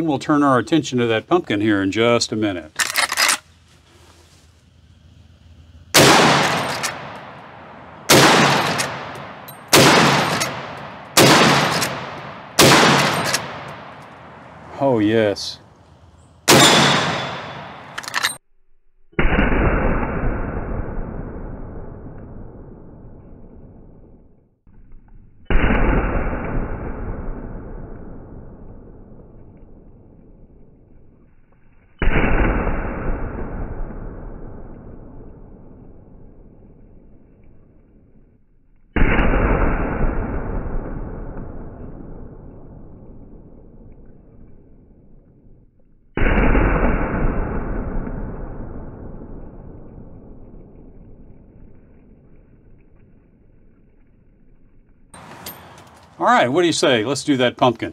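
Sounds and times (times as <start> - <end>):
rifle shot crack: 5.9 - 15.4, 16.4 - 18.4, 19.2 - 24.2, 25.5 - 30.2, 32.0 - 36.7, 39.0 - 44.3, 46.2 - 51.8
distant gunshot booms: 6.0 - 14.0, 16.5 - 18.0.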